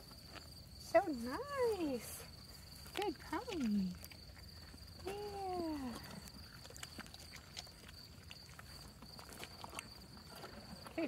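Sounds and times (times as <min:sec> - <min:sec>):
high-pitched insect trill: 0:00.0 - 0:11.0
horse chewing crunches: 0:02.4 - 0:11.0.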